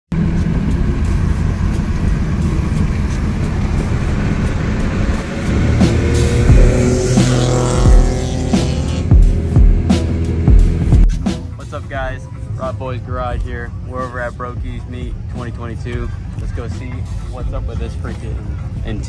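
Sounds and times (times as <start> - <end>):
car engine and road noise: 0.1 - 19.0
music with deep bass thumps: 0.1 - 19.0.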